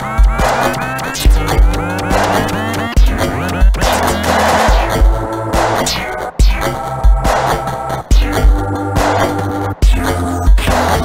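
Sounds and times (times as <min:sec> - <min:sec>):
sustained bass notes: 0:00.0 - 0:11.0
heavy kick drum: 0:00.2 - 0:11.0.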